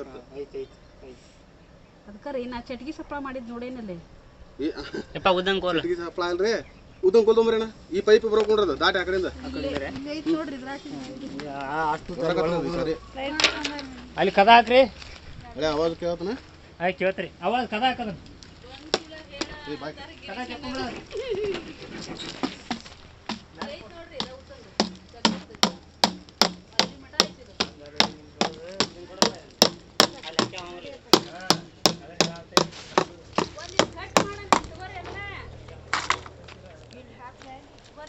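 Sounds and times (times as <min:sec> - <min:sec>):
stick knocking on hard surface: 0:22.7 - 0:34.8.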